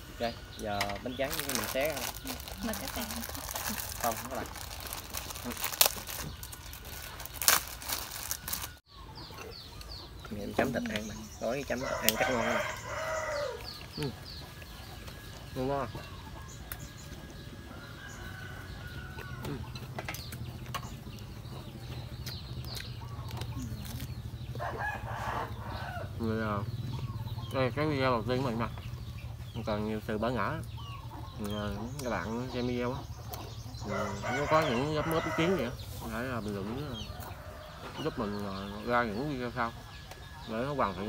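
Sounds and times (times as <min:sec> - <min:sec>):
plastic wrapper crinkling: 0:01.2 - 0:08.8
rooster crowing: 0:11.6 - 0:13.8, 0:24.5 - 0:26.2, 0:33.8 - 0:35.8.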